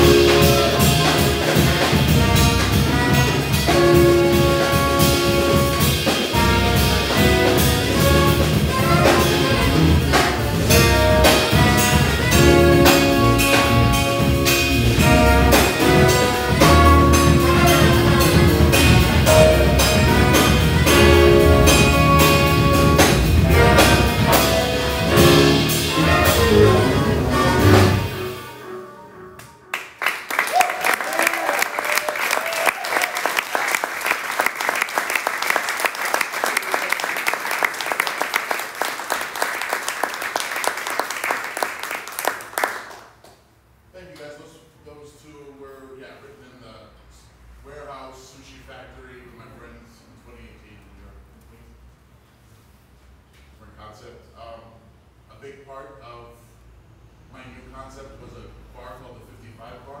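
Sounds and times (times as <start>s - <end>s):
audience applauding: 29.4s - 43.4s.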